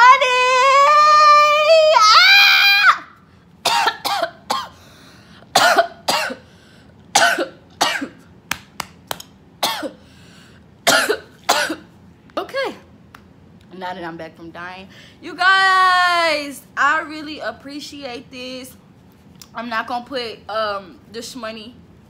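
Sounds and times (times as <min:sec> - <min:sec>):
woman wailing: 0:00.0 - 0:03.1.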